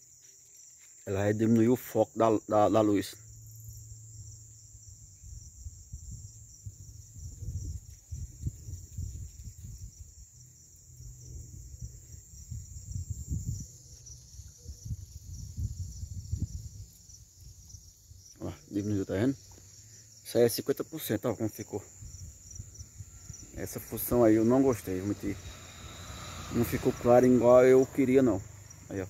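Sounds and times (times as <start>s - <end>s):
crickets chirping: 0.0s - 29.0s.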